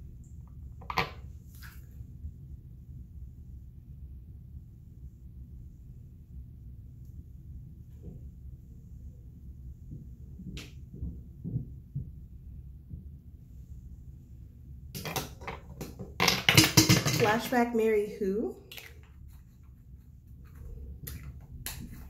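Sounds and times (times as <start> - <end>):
room hum: 0.0 - 22.0
makeup items knocking: 15.0 - 17.5.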